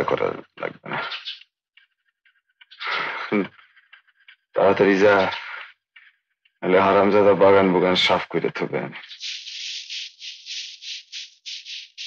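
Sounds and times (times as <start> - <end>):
dry hissing rattle: 9.0 - 12.0.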